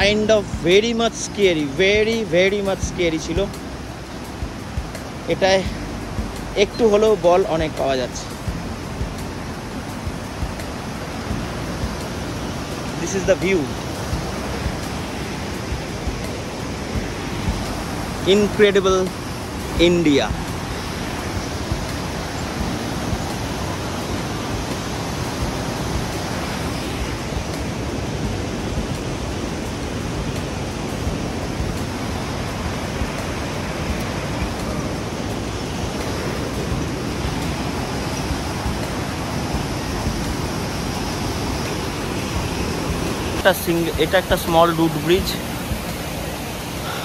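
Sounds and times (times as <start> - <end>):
river rapids rushing: 0.0 - 47.0.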